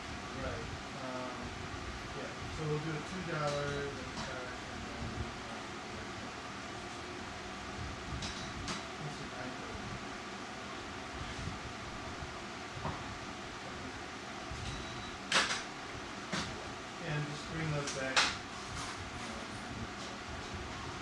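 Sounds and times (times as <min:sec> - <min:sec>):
low fan hum: 0:00.0 - 0:21.0.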